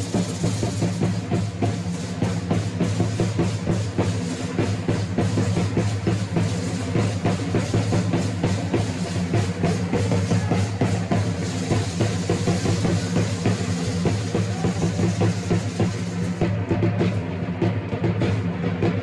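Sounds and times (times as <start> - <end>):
drums beating fast rhythm: 0.0 - 19.0.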